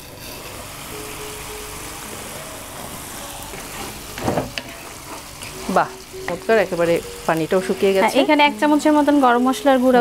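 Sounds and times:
food sizzling in a pot: 0.0 - 10.0
faint music: 0.1 - 10.0
wooden spatula stirring: 2.8 - 5.8.

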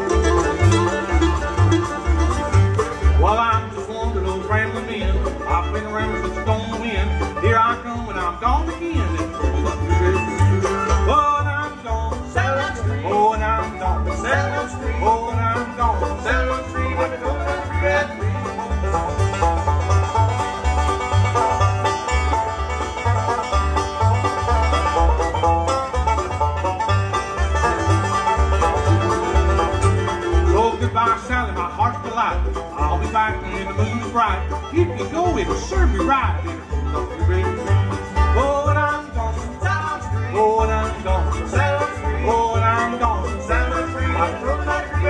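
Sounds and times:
banjo: 0.0 - 45.0
bluegrass band playing: 0.0 - 45.0
upright bass steady beat: 0.0 - 45.0.

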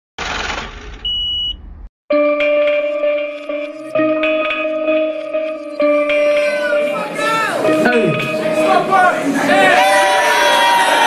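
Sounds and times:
high-pitched electronic beep: 1.0 - 1.6.

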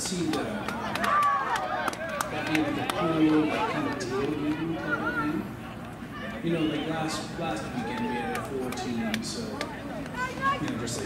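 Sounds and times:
spectator chatter: 0.0 - 11.0.

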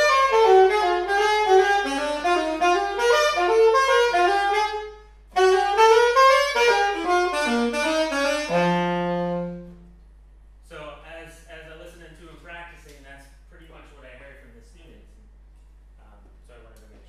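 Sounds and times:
solo saxophone jazz line: 0.0 - 10.1.

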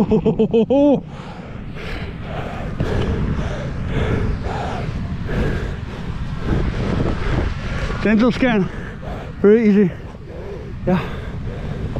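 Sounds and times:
wind rumbling on microphone: 0.0 - 11.9.

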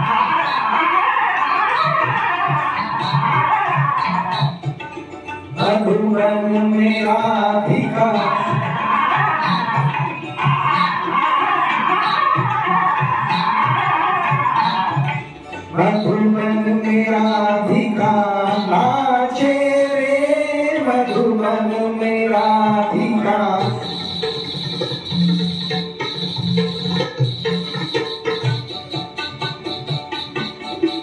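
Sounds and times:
karaoke backing track: 0.0 - 31.0
man singing into microphone: 5.6 - 12.3, 15.7 - 24.2
high-pitched whine: 23.0 - 31.0.

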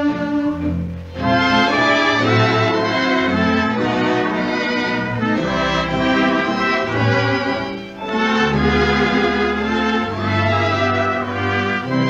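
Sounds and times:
dance orchestra playing a waltz: 0.0 - 12.0.

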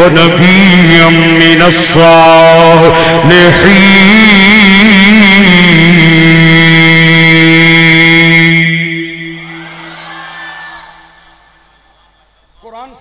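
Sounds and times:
man chanting through loudspeakers: 0.0 - 9.4.

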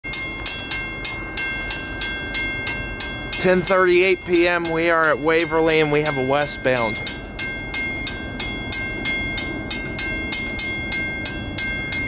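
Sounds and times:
crossing bell ringing: 0.0 - 12.0.

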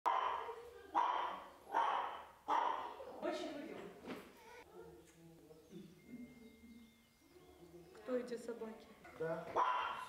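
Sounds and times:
small dog barking: 0.1 - 3.1, 9.6 - 10.0.

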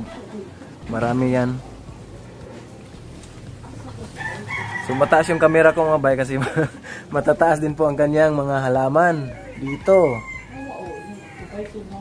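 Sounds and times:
rooster crowing: 4.2 - 6.2, 9.0 - 11.9.

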